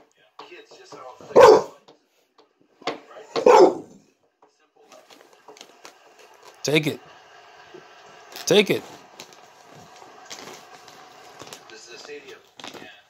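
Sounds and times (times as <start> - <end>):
dog barking: 1.2 - 1.8, 3.3 - 4.0.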